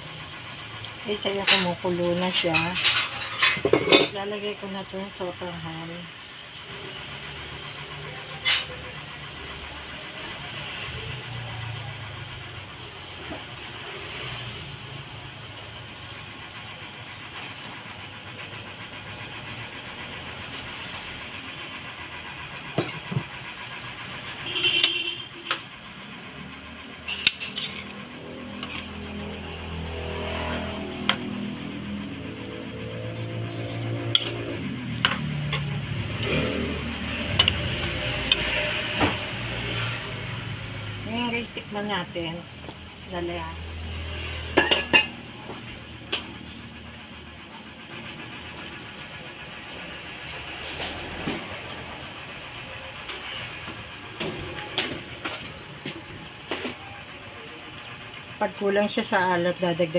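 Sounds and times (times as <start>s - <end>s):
broth simmering in a wok: 0.0s - 59.9s.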